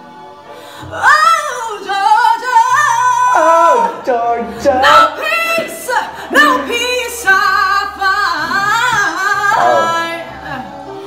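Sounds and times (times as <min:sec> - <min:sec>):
quiet musical accompaniment: 0:00.0 - 0:11.0
woman singing a soulful ballad: 0:00.7 - 0:10.7.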